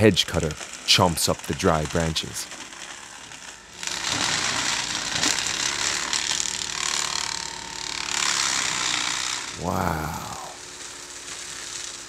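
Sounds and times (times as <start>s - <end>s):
hedge cutter crunching branches: 0.0s - 12.0s.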